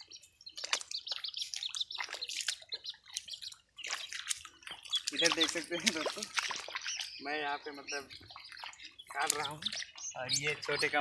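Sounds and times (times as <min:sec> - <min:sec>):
duckling peeping: 0:00.0 - 0:11.0
wet footsteps squelching in mud: 0:00.0 - 0:11.0.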